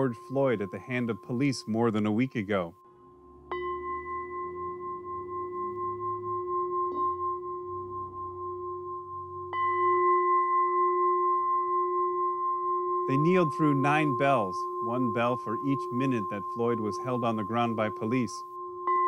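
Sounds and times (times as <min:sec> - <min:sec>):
metal bowl bell ringing: 0:03.5 - 0:19.0.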